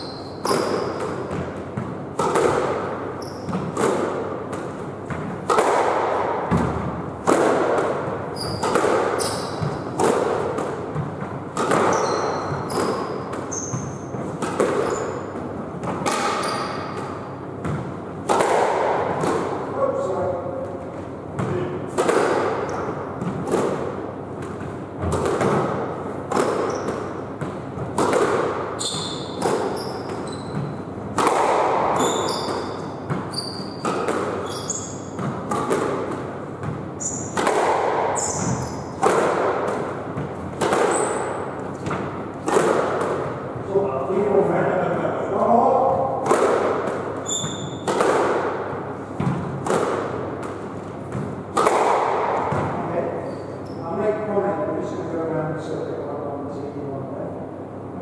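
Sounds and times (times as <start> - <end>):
squash ball hitting walls: 0.0 - 55.8
shoes squeaking on wooden floor: 8.3 - 10.0, 11.8 - 15.4, 16.4 - 17.0, 28.8 - 30.9, 31.9 - 35.2, 38.2 - 38.9, 47.2 - 47.9.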